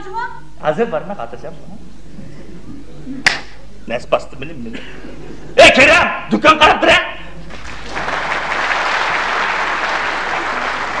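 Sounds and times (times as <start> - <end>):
audience applauding: 7.4 - 11.0.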